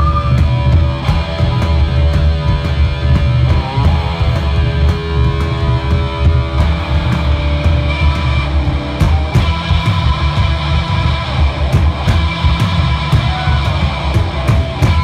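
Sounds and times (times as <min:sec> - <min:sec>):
bass guitar: 0:00.0 - 0:15.0
distorted electric guitars: 0:00.0 - 0:15.0
drum kit beat: 0:00.0 - 0:15.0.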